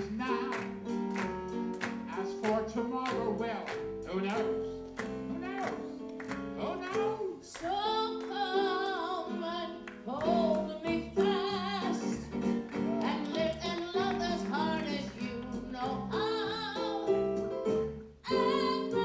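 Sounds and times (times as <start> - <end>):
person singing with vibrato: 0.0 - 0.8, 6.6 - 17.4, 18.2 - 19.0
instrumental accompaniment chords: 0.0 - 19.0.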